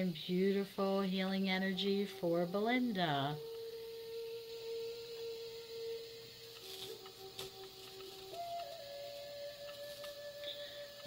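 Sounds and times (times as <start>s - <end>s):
ambient meditation music: 0.0s - 11.0s.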